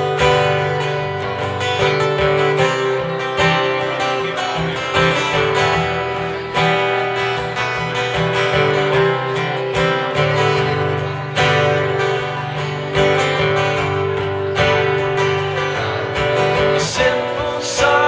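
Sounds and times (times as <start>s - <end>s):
acoustic guitar strumming: 0.0s - 18.0s.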